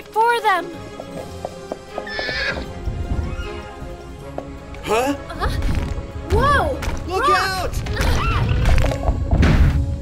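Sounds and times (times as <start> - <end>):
background music: 0.0 - 10.0
cartoon hooves clopping: 0.8 - 2.8.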